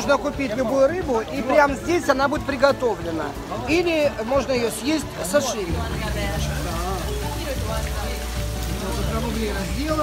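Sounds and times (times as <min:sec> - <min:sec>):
background music: 0:00.0 - 0:10.0
water splashing and bubbling: 0:00.0 - 0:10.0.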